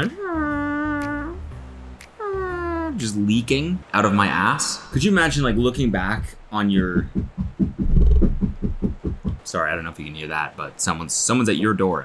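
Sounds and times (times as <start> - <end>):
rapid low rattle: 5.3 - 9.5.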